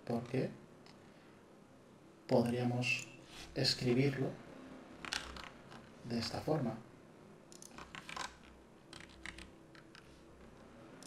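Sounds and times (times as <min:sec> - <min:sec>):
computer keyboard and mouse clicking: 0:05.0 - 0:05.9, 0:07.5 - 0:10.1.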